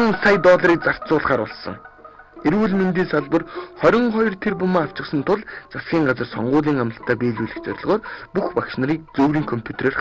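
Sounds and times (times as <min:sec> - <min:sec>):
narrator talking: 0:00.0 - 0:10.0.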